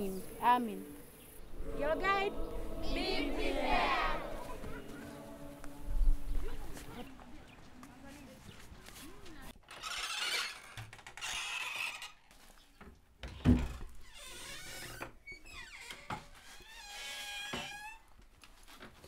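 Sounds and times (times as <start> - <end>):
wooden door hinge creaking: 9.7 - 12.2, 13.2 - 18.1.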